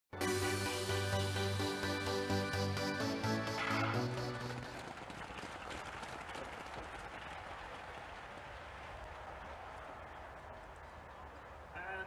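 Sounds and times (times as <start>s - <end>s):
spectators applauding: 3.6s - 12.0s.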